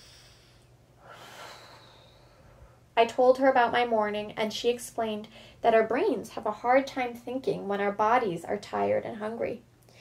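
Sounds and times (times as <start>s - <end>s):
woman exhaling: 0.0s - 2.8s.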